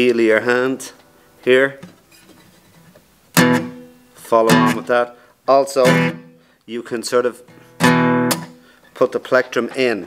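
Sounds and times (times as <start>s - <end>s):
acoustic guitar strum: 2.1s - 5.0s, 5.8s - 6.5s, 7.5s - 8.8s.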